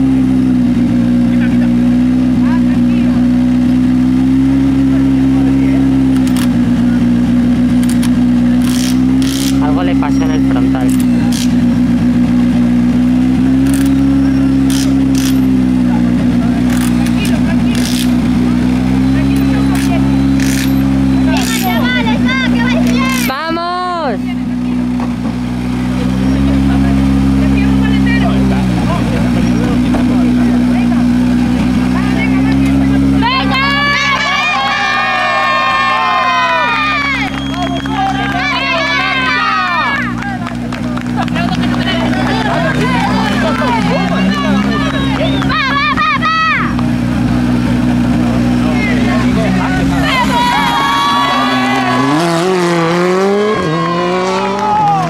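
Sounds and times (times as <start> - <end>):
car engine revving at idle: 0.0 - 55.0
voices shouting: 17.4 - 24.4, 31.9 - 46.9, 48.4 - 55.0.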